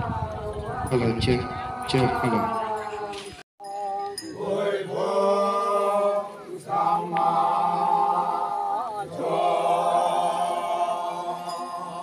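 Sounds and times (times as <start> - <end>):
men chanting in unison: 0.0 - 3.4, 4.2 - 12.0.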